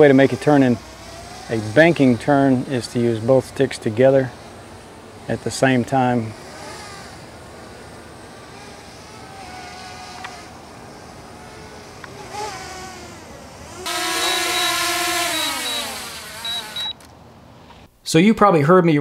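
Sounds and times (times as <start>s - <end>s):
drone propeller whine: 0.0s - 17.0s.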